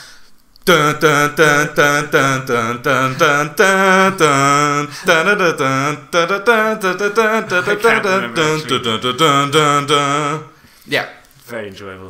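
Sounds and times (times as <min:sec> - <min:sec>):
men humming a tune: 0:00.6 - 0:10.7.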